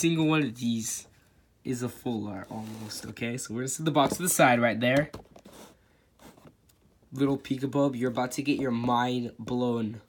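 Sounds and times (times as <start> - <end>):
soft handling knocks and rustles: 3.9 - 6.6.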